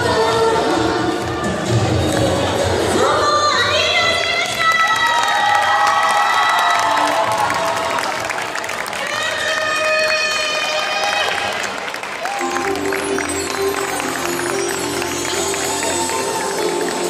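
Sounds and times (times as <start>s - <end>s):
women singing into microphones: 0.0s - 4.6s
audience cheering: 4.8s - 9.3s, 10.0s - 17.0s.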